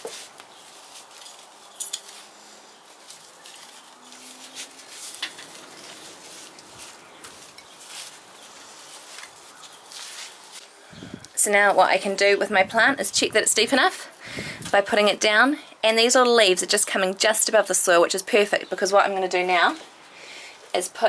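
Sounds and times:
trowel scraping soil: 0.0s - 10.6s.

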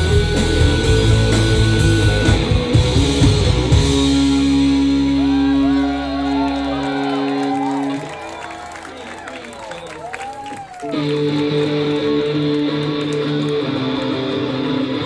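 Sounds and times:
wavering guitar tones: 0.0s - 7.7s, 10.9s - 15.0s
rock band playing live: 0.0s - 8.1s, 10.8s - 15.0s.

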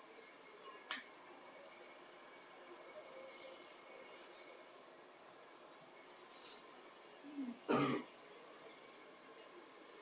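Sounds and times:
harsh cough: 7.7s - 8.1s
person clearing throat: 7.7s - 8.1s.

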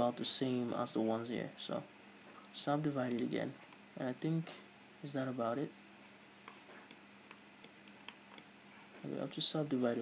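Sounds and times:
low electrical hum: 0.0s - 10.0s
computer mouse clicks: 6.5s - 8.5s.

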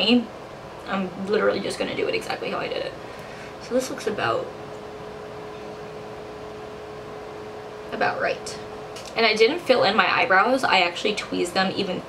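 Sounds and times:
faint hum: 0.0s - 12.0s
room hiss: 0.0s - 12.0s.

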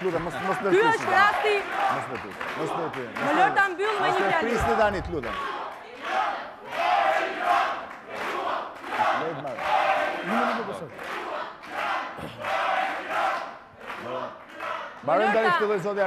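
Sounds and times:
audience chanting in rhythm: 0.0s - 4.7s, 5.3s - 15.1s
massed shout: 3.9s - 15.4s.

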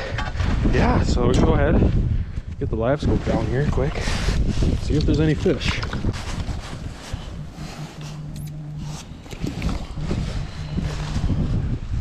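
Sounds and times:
faint low hum: 3.2s - 12.0s
clothing rustling: 3.4s - 11.7s.

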